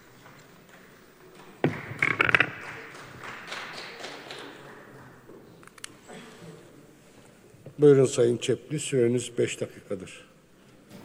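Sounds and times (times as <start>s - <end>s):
faint room noise in hall: 0.0s - 11.0s
sharp clicks and knocks: 1.6s - 2.8s.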